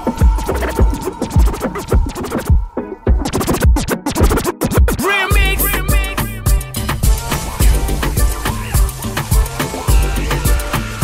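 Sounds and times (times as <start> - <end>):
kick-drum beat: 0.0 - 11.0
turntable scratching: 0.0 - 11.0.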